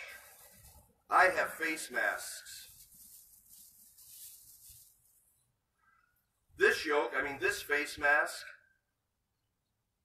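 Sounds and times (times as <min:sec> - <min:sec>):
faint hiss: 0:00.0 - 0:05.3.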